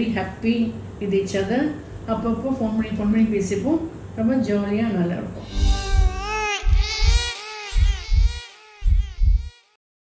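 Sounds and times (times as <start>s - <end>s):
heartbeat thumps: 5.4s - 9.6s
high wavering voice-like tone: 5.4s - 9.7s.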